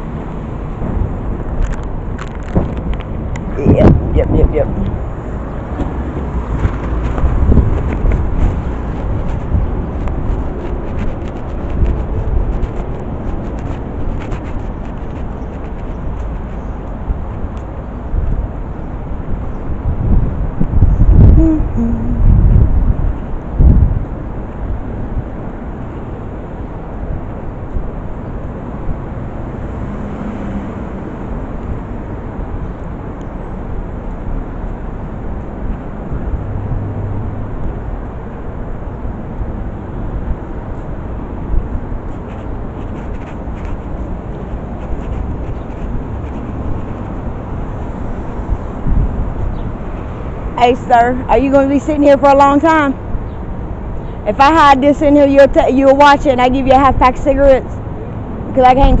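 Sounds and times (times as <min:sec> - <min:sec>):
low rumble of traffic: 0:00.0 - 0:59.0.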